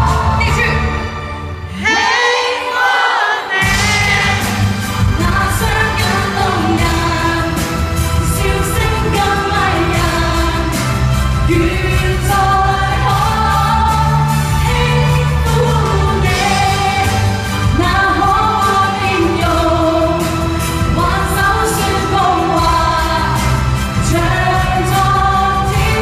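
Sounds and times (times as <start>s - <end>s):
amplified backing music: 0.0s - 26.0s
two people singing a duet: 1.7s - 26.0s.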